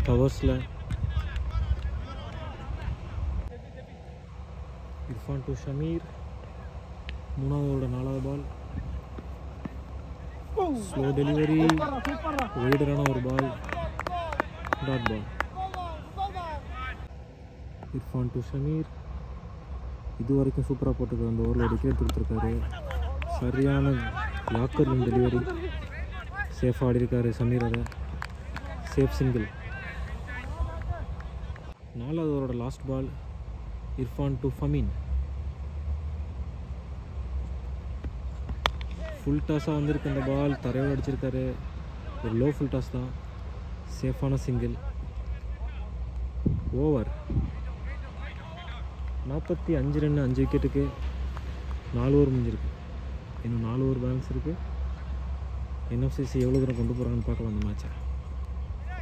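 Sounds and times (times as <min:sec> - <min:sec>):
low outdoor rumble: 0:00.0 - 0:59.0
man calling out: 0:10.5 - 0:17.1.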